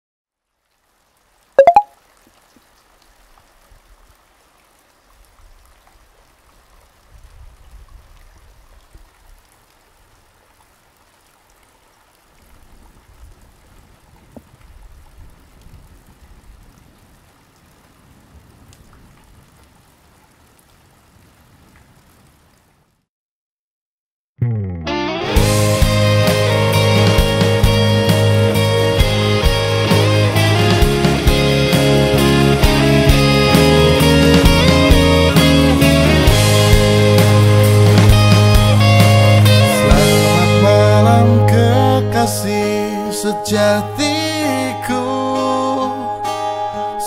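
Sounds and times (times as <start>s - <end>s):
rain-like hiss: 0.3s - 23.1s, 25.5s - 40.7s
loud tonal blip: 1.6s - 1.9s.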